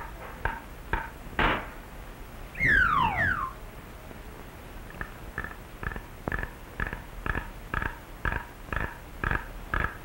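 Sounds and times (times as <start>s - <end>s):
whistle sliding downward: 2.6s - 3.6s.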